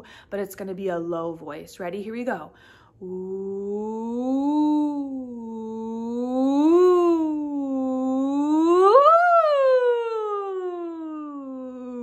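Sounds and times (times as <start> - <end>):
woman singing ooh: 3.0 - 12.0.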